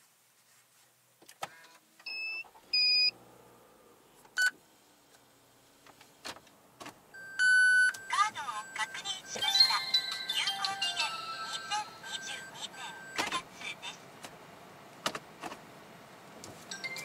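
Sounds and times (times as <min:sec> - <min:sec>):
car dashboard beeps: 0:02.1 - 0:03.1, 0:07.1 - 0:09.4, 0:12.1 - 0:13.4
person speaking: 0:08.1 - 0:14.0.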